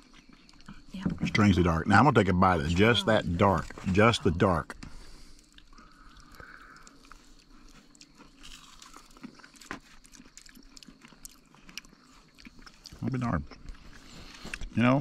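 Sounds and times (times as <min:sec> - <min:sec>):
chewing with soft crunches: 0:00.0 - 0:15.0.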